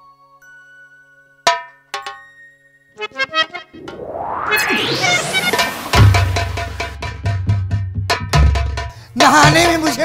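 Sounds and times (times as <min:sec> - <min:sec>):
electronic keyboard chord stabs: 0:03.0 - 0:07.0
rising whooshing sweep: 0:03.0 - 0:07.2.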